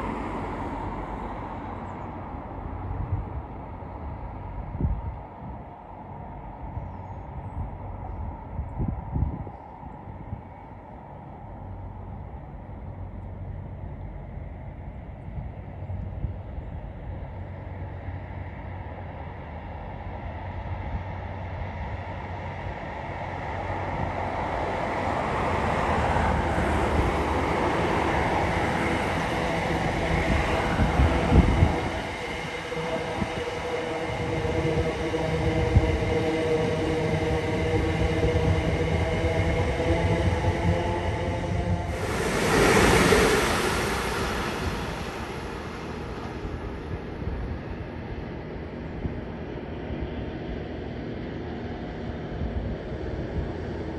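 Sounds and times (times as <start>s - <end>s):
train whine: 0.0s - 50.6s
electric train passing on rails: 0.0s - 53.9s.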